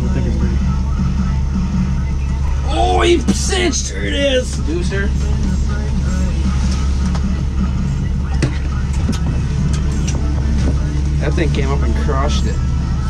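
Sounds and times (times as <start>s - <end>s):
low motor hum: 0.0s - 13.0s.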